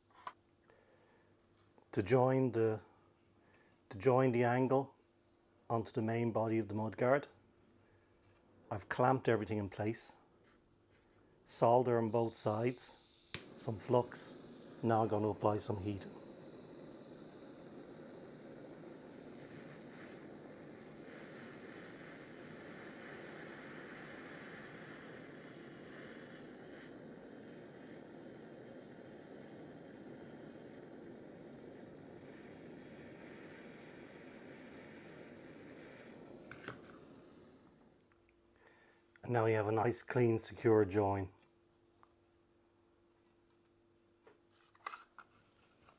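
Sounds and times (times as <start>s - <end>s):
gas torch hissing: 11.6s - 38.1s.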